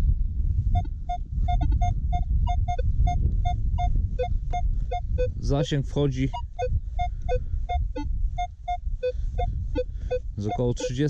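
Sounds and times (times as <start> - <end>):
low rumble: 0.0 - 11.0
metal detector beeping: 0.8 - 5.4, 6.2 - 11.0.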